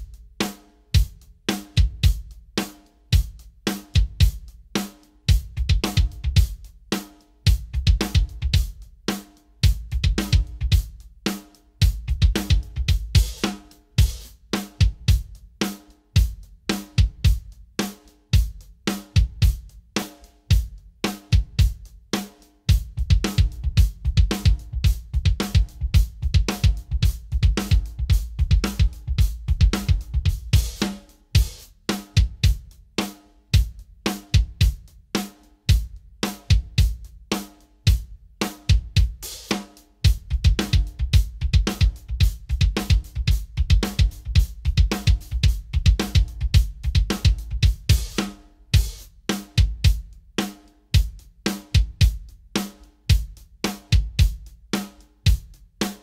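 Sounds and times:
drum kit groove: 0.0s - 56.0s.

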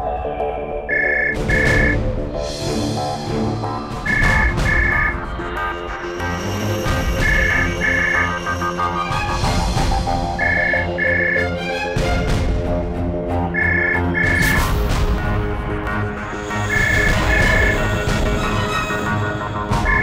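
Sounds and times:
dramatic music with pulsing beat: 0.0s - 20.0s
landline telephone ringing: 13.6s - 14.4s.

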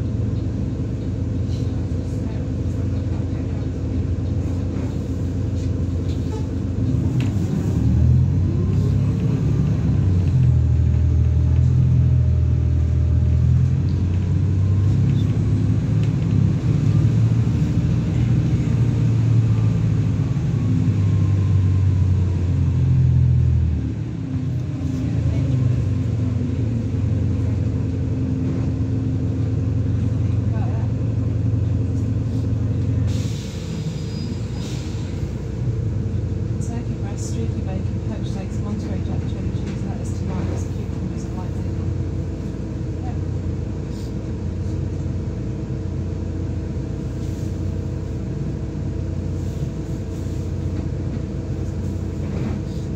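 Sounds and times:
bus diesel engine drone: 0.0s - 52.9s.

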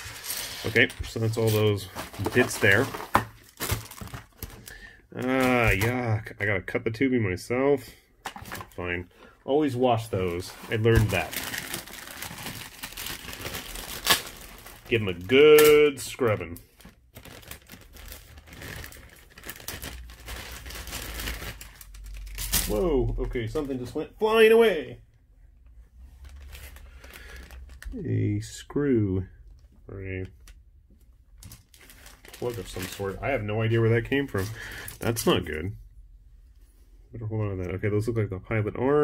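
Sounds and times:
plastic bag crinkling: 0.0s - 5.9s, 9.8s - 22.9s, 26.2s - 28.0s, 31.4s - 35.3s.

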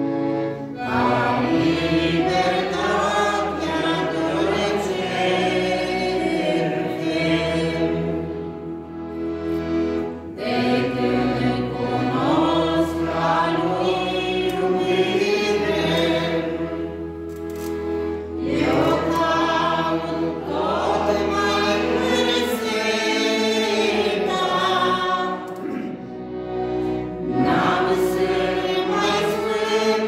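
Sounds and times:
congregation singing a hymn: 0.0s - 30.0s.

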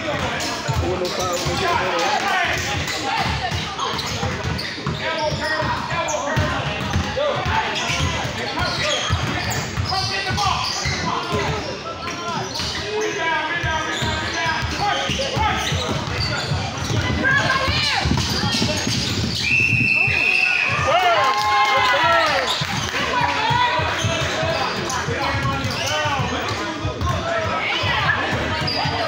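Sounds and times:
players and spectators voices: 0.0s - 29.0s
basketball bouncing on court floor: 2.5s - 11.7s, 13.6s - 19.4s, 22.5s - 29.0s.

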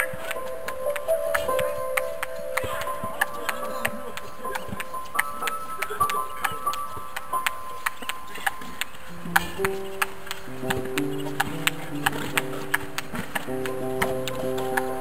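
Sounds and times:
music with held notes: 0.0s - 15.0s.

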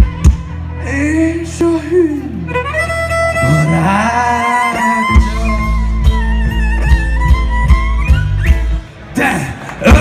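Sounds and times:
electric bass: 0.0s - 10.0s
guitar: 0.0s - 10.0s.

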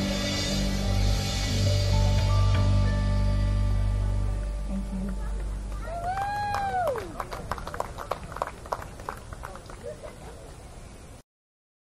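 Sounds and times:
audience voices: 4.0s - 10.8s
sparse clapping: 5.1s - 9.9s.

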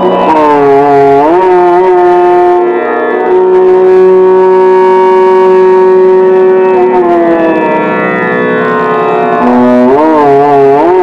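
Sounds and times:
low drone: 0.0s - 11.0s.

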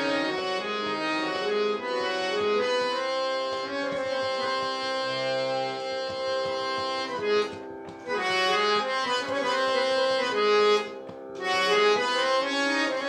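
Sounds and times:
harmonium melody: 0.0s - 13.0s.

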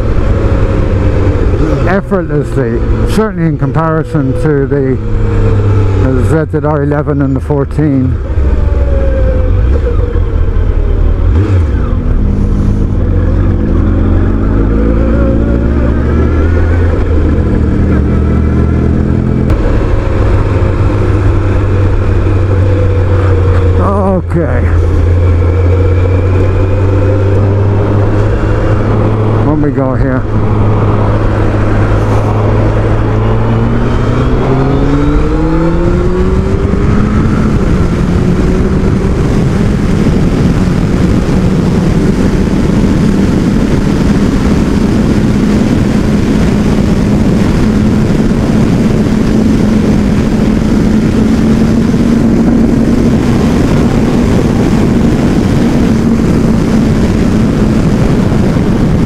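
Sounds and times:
motorcycle engine at speed: 0.0s - 59.0s
wind noise: 0.0s - 59.0s.

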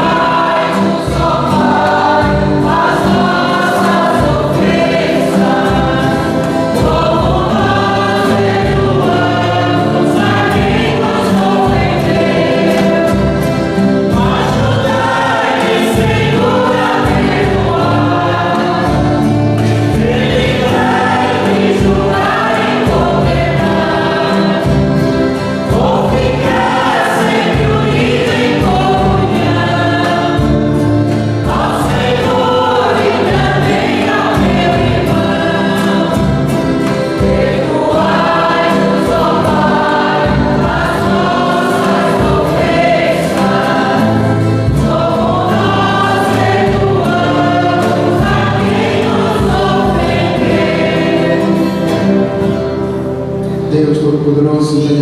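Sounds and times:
group singing a hymn: 0.0s - 55.0s
piano accordion: 0.0s - 55.0s
strummed acoustic guitars: 0.0s - 55.0s.

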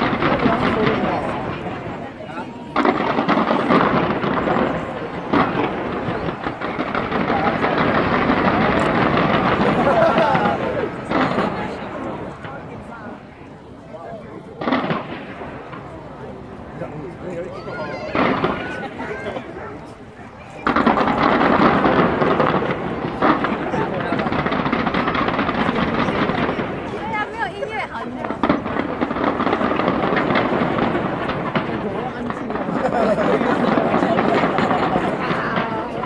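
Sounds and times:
crowd voices: 0.0s - 36.0s
fireworks bangs and crackles: 0.0s - 36.0s.

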